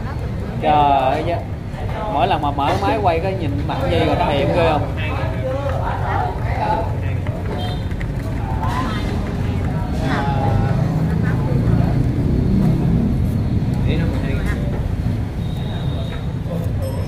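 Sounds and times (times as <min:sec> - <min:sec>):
road traffic rumble: 0:00.0 - 0:17.0
voices: 0:00.0 - 0:17.0.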